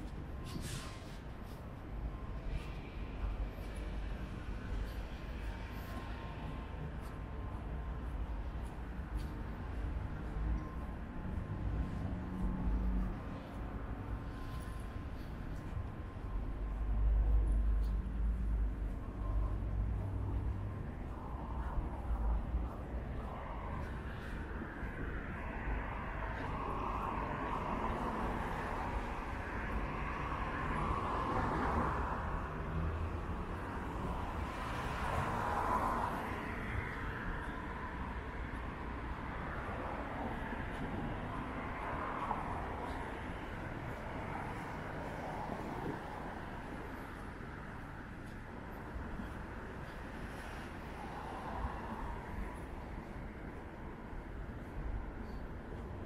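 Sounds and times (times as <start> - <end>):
cars passing on road: 0.0 - 56.0.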